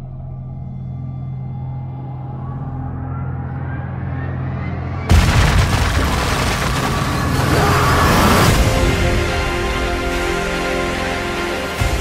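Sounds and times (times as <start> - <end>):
low drone: 0.0 - 12.0.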